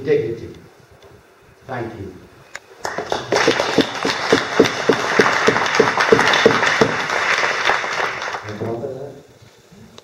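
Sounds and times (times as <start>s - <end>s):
audience applauding: 2.8s - 8.7s.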